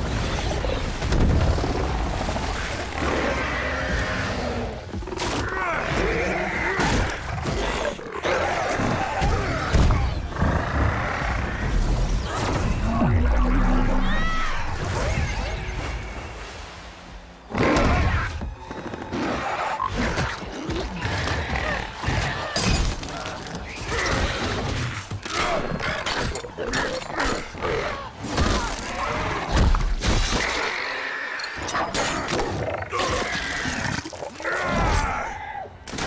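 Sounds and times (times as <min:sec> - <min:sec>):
rumbling rush of wind and water: 0:00.0 - 0:35.9.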